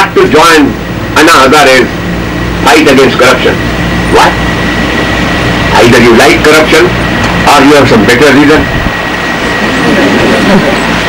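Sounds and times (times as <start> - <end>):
sound system hiss and hum: 0.0 - 11.0.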